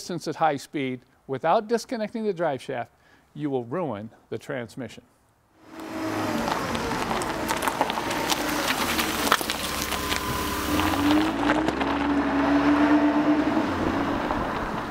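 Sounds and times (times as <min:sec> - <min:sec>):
low tone: 0:05.6 - 0:14.9
vehicle engine running: 0:05.6 - 0:14.9.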